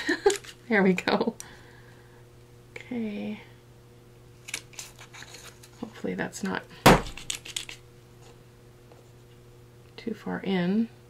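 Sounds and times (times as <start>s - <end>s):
metal hole punch clicking and rattling: 7.1s - 7.8s.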